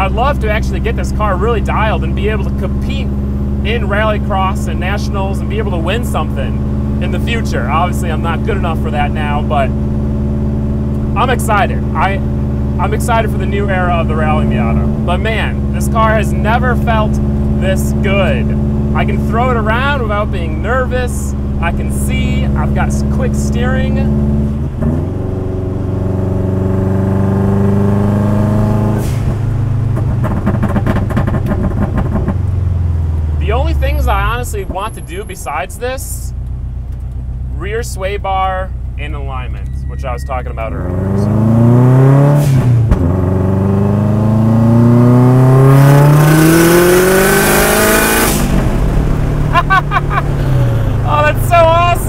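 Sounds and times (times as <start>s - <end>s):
car engine revving: 0.0s - 52.0s
driver laughing: 49.4s - 52.0s.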